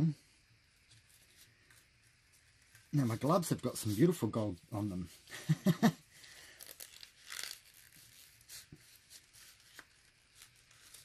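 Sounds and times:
crinkling and rustling handling noise: 0.8s - 5.5s, 6.1s - 11.0s.

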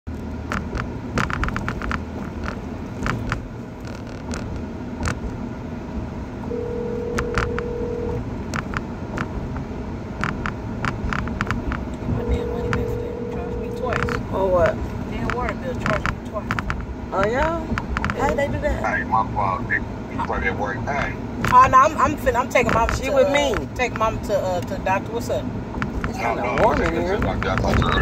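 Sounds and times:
car road and engine rumble: 0.0s - 28.0s
sharp clicks: 0.1s - 5.4s, 7.1s - 12.0s
steady tone: 6.4s - 8.3s, 11.9s - 16.0s.

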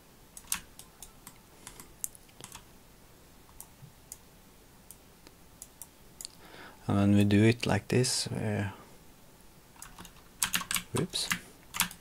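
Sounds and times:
keyboard and mouse clicking: 0.3s - 2.6s, 9.8s - 12.0s.

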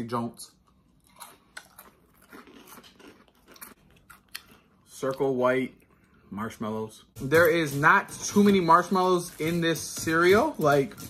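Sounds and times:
cereal crunching while chewed: 1.0s - 5.2s.

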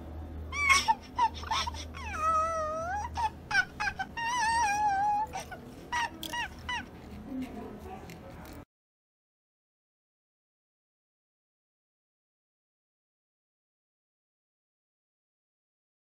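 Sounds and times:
squeaky cartoon voice squealing: 0.5s - 6.9s.

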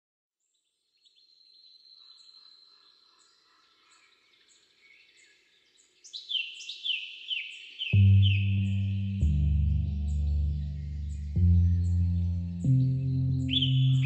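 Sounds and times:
faint high bird chirping: 0.4s - 14.0s.

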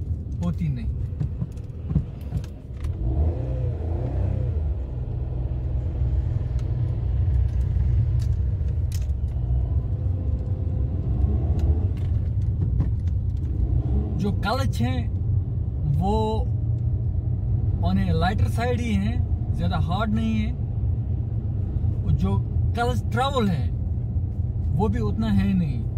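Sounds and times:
car engine rumble: 0.0s - 25.9s
road noise: 0.0s - 25.9s
light clicks and rattles: 6.4s - 9.6s, 10.2s - 13.6s.

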